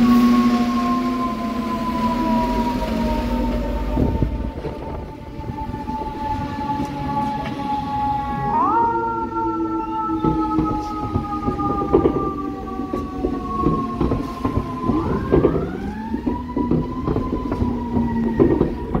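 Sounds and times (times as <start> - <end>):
rescue truck siren: 0.0 - 19.0
truck engine rumble: 0.0 - 19.0.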